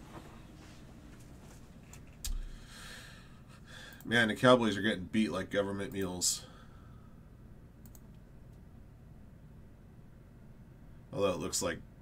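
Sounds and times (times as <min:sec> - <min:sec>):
man exhaling: 0:02.3 - 0:04.0.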